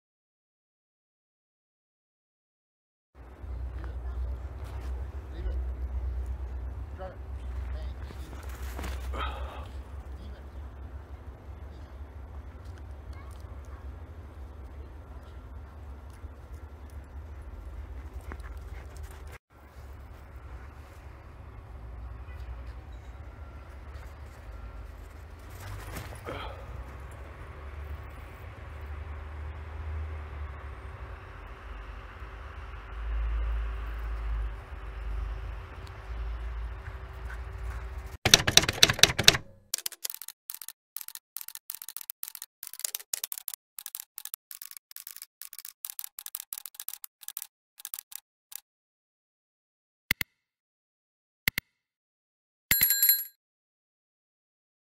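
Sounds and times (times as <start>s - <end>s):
steady low rumble: 3.2s - 38.2s
dog paws padding on snow: 3.5s - 10.8s, 11.5s - 21.3s, 22.4s - 27.2s, 36.7s - 38.2s
typewriter key clicks: 38.2s - 48.2s.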